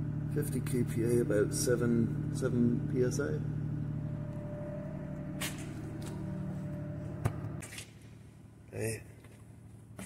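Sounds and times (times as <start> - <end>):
diesel engine idling: 0.0 - 10.0.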